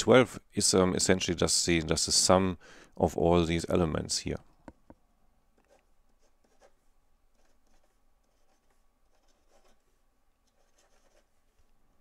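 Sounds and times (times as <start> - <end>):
pen scratching on paper: 5.6 - 11.6.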